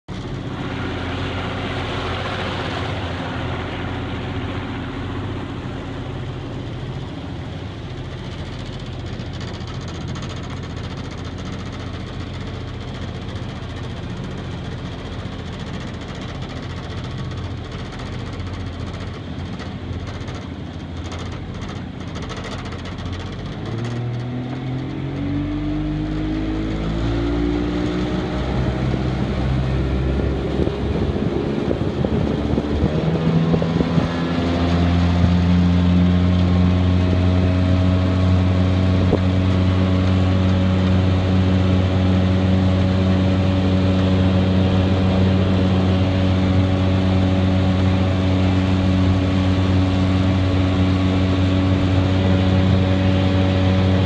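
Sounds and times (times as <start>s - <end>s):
boat engine running and revving: 0.0s - 54.0s.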